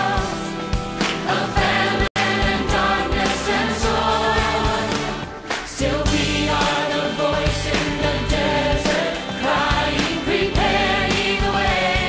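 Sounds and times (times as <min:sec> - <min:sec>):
choir singing over a beat: 0:00.0 - 0:12.0.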